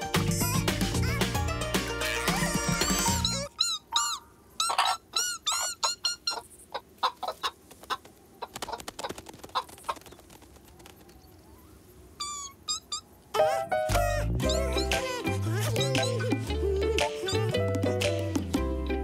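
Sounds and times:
loud cartoon music: 0.0s - 3.5s, 13.4s - 18.7s
hens clucking: 2.0s - 10.1s.

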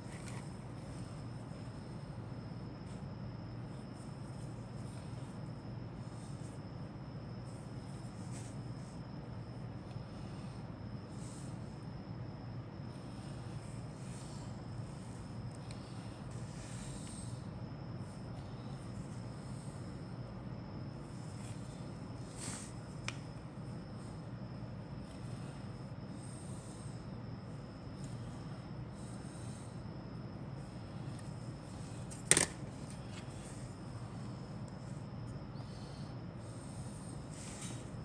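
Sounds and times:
faint high whine: 0.0s - 38.0s
steady low hum: 0.0s - 38.0s.

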